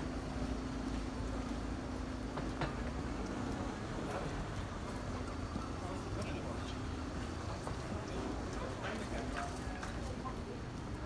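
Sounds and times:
passers-by talking: 3.5 - 11.0.

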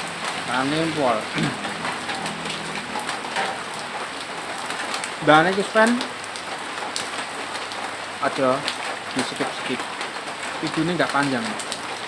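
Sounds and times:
rain on metal roof: 0.0 - 12.0.

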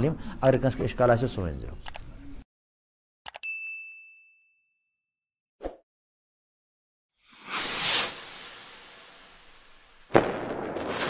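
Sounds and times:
bell-like ding: 3.4 - 5.0.

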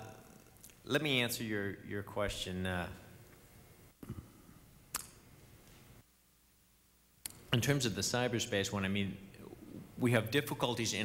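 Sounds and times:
sharp click: 4.9 - 5.2.

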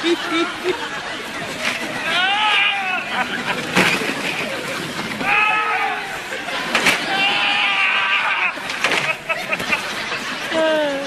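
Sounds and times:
audience laughing: 0.0 - 5.2, 6.0 - 10.8.

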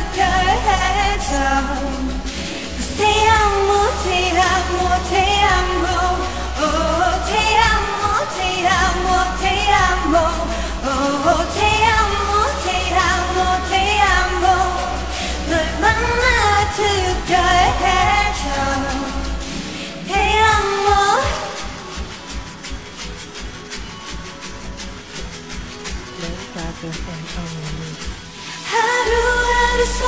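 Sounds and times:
woman singing: 0.0 - 22.6, 26.2 - 30.0.

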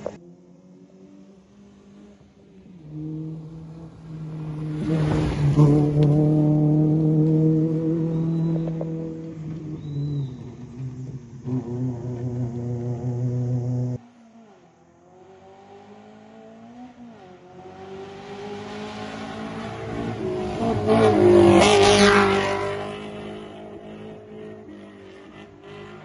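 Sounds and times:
car engine passing close: 0.0 - 26.0
rally car engine at high revs: 0.0 - 26.0.

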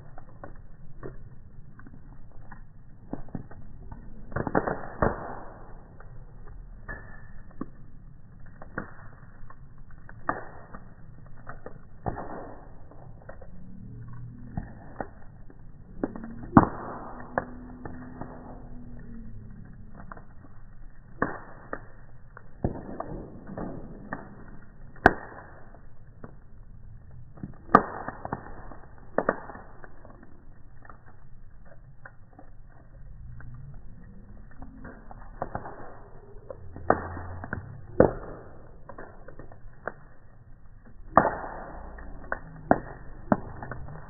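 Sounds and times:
bonfire wood crackling: 0.0 - 44.0
fire popping: 0.0 - 44.0.

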